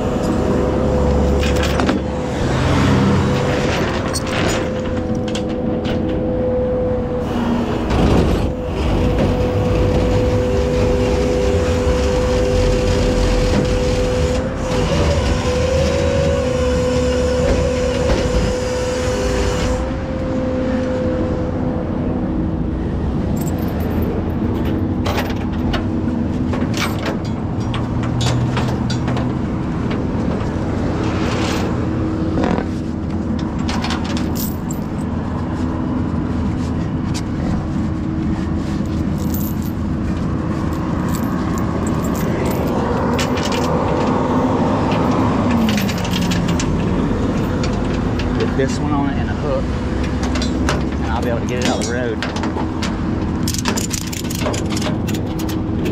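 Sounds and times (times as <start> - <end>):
engine hum: 0.0 - 55.9
road traffic rumble: 0.0 - 55.9
metal hardware clinking: 23.4 - 25.8, 33.7 - 35.1, 38.9 - 39.8, 40.7 - 44.1.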